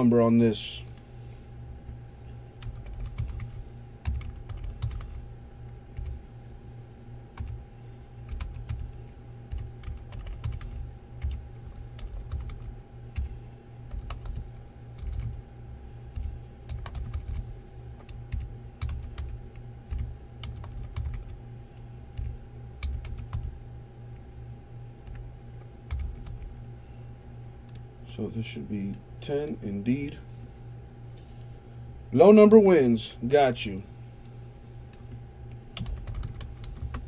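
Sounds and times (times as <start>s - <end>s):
steady low hum: 0.0s - 37.0s
typing on computer keyboard: 2.6s - 5.2s, 8.3s - 8.8s, 9.5s - 11.4s, 12.0s - 13.3s, 13.9s - 14.4s, 15.0s - 15.4s, 16.2s - 17.4s, 18.0s - 21.4s, 22.2s - 23.5s, 25.9s - 26.5s, 35.8s - 37.0s.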